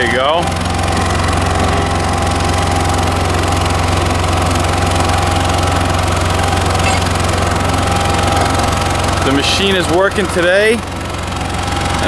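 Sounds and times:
diesel engine droning: 0.0s - 12.0s.

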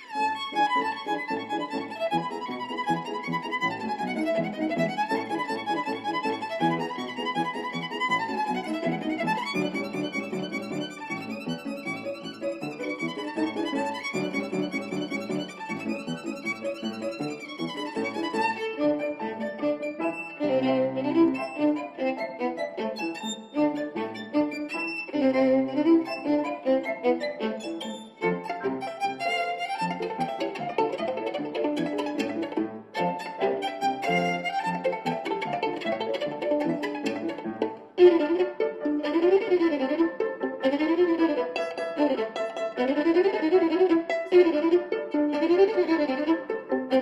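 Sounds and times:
violin playing classical piece: 0.0s - 47.0s
grand piano accompaniment: 0.1s - 47.0s.

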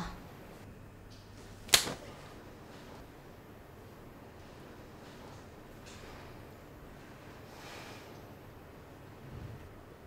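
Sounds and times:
hand slapping skin: 1.7s - 2.0s.

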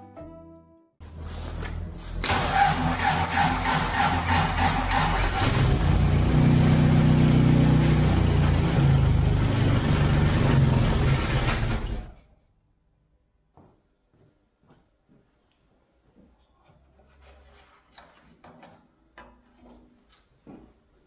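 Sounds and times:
starter motor cranking engine: 2.2s - 12.2s.

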